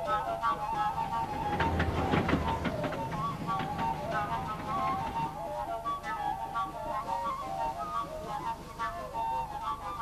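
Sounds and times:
background music: 0:00.0 - 0:10.0
steam train running: 0:00.0 - 0:10.0.

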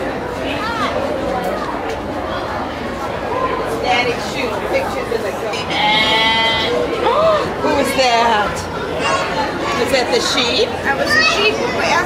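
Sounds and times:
sheep bleating: 0:05.7 - 0:06.9.

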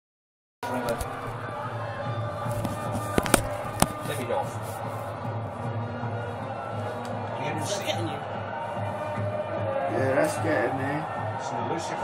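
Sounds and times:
televised football crowd hum: 0:00.6 - 0:12.0.

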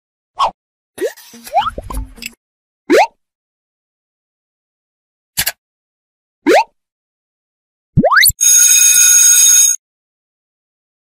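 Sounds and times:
cartoon bloop pops: 0:02.9 - 0:03.2, 0:06.5 - 0:06.8, 0:08.0 - 0:08.4.

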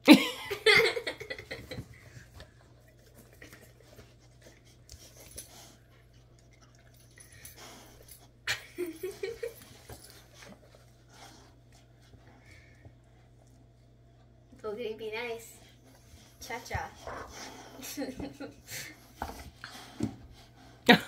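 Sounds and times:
dogs mouthing and breathing: 0:01.4 - 0:14.4, 0:15.6 - 0:20.9.

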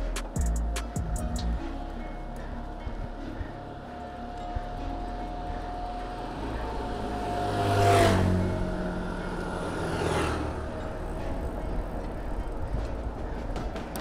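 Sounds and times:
motor vehicle passing by: 0:03.5 - 0:14.0.

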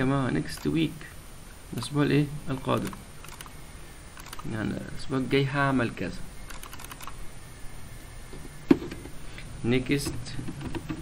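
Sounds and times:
keyboard and mouse clicks: 0:02.7 - 0:03.6, 0:04.2 - 0:04.6, 0:05.9 - 0:07.2.

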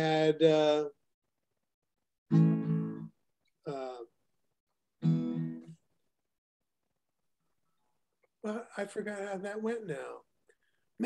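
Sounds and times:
acoustic guitar chord strummed: 0:02.3 - 0:03.1, 0:05.0 - 0:05.7.

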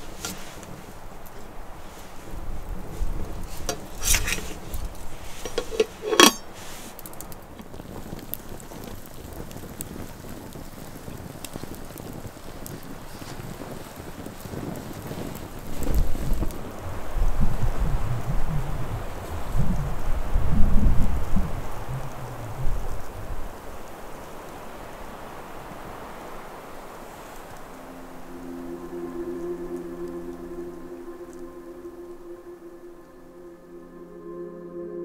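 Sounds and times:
wind buffeting microphone: 0:00.0 - 0:28.5
campfire crackling: 0:00.0 - 0:34.4
outdoor hiss: 0:00.0 - 0:34.5.

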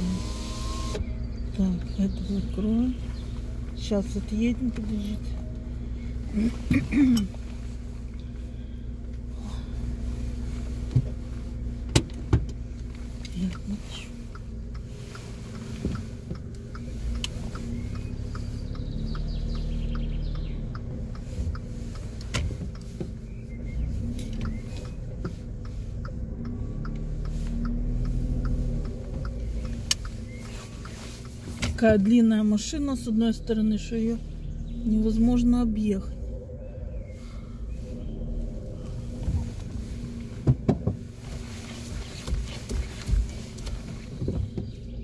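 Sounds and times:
car engine and road noise: 0:00.0 - 0:45.0
faint regular ticks: 0:07.3 - 0:32.8
sharp clicks: 0:11.9 - 0:32.2.

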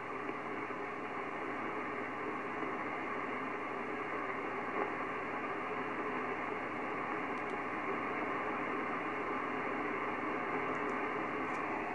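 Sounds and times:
radio receiver hiss and static: 0:00.0 - 0:11.9.

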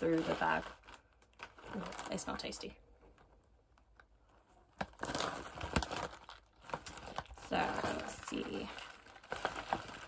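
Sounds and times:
chip bag crinkling: 0:00.0 - 0:02.7, 0:04.8 - 0:10.0.

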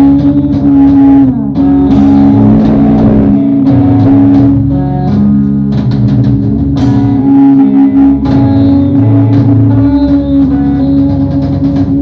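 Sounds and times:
bass guitar: 0:00.0 - 0:12.0
distorted electric guitar chords: 0:00.0 - 0:12.0
drum and cymbal hits: 0:00.0 - 0:12.0.

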